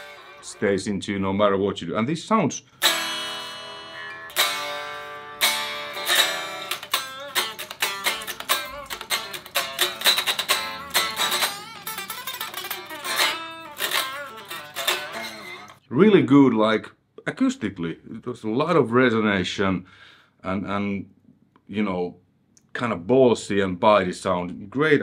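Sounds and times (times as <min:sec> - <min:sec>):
unplugged electric guitar playing: 0:00.0 - 0:00.9, 0:02.8 - 0:15.8.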